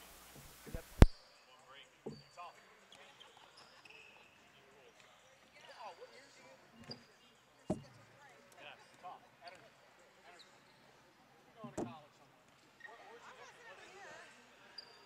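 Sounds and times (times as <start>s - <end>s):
sneaker squeaks: 2.1s - 2.4s, 6.8s - 8.0s
basketball bouncing on court: 7.7s - 8.0s.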